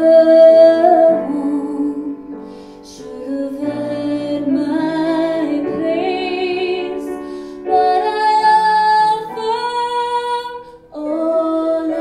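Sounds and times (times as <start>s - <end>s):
woman singing a slow ballad: 0.0s - 12.0s.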